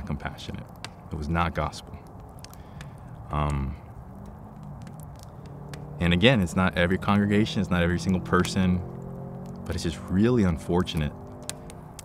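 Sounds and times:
faint campfire crackling: 0.0 - 12.0.

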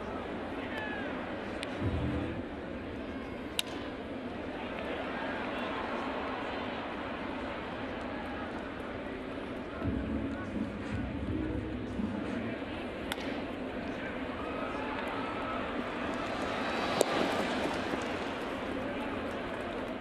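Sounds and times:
crowd murmur with voices: 0.0 - 20.0
bat cracking a ball: 13.1 - 13.4, 16.0 - 19.2.

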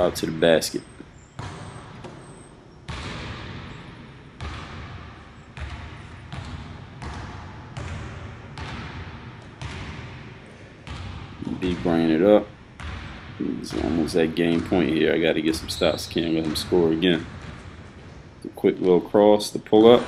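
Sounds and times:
basketball bouncing on wooden floor: 0.0 - 19.2.

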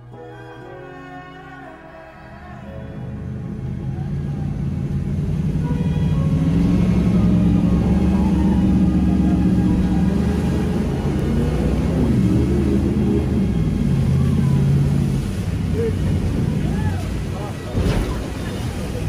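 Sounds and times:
boat engine drone: 0.0 - 19.0.

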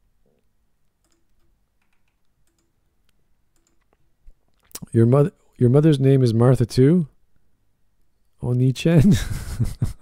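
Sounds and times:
computer clicks: 1.0 - 2.8, 3.5 - 4.0
man speaking: 4.8 - 7.2, 8.4 - 9.2.

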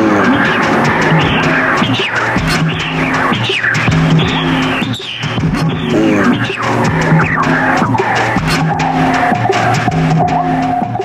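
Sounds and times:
low repeating electronic note: 0.0 - 11.0
noisy sweeping textures: 0.0 - 11.0.

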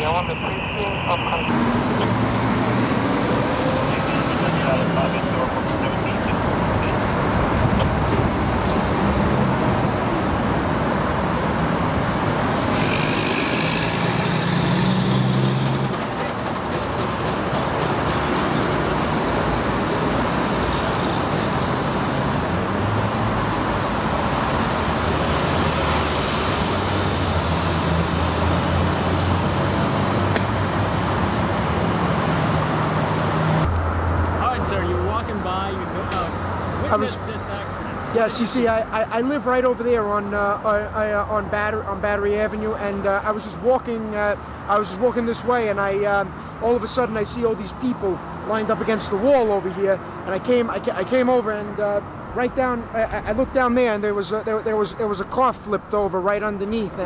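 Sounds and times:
highway traffic passing: 0.0 - 57.0.

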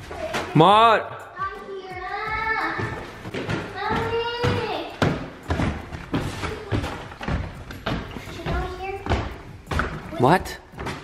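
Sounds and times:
footsteps on wooden stairs: 1.9 - 11.0.

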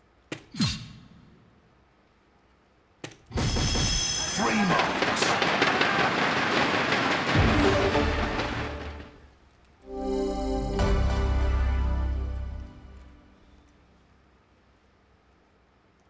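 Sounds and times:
crowd noise: 4.3 - 9.4.

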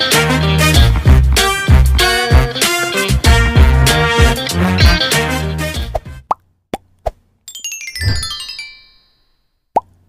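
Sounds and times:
upward-bending pops: 6.3 - 7.2
falling chime-like tones: 7.5 - 9.6.

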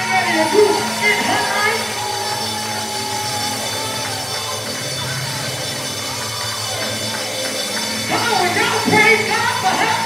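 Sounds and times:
keyboard sustained chords: 0.0 - 10.0.

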